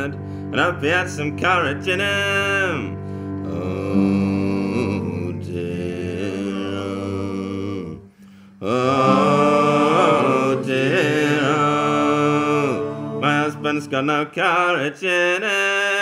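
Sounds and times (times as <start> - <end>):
steady low drone: 2.6 - 8.0, 8.8 - 14.0
voices singing folk chorus: 3.4 - 16.0.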